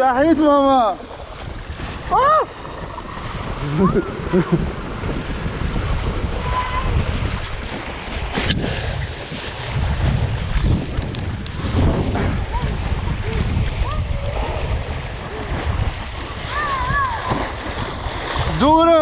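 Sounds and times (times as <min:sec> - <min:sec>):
wind buffeting microphone: 0:00.0 - 0:19.0
water slapping board: 0:01.0 - 0:19.0.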